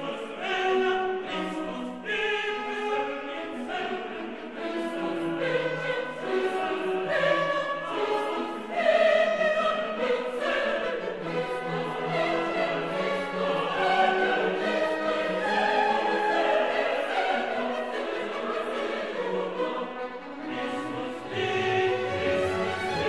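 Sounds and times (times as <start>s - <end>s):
choir singing sustained notes: 0.0s - 23.0s
orchestral accompaniment: 0.0s - 23.0s.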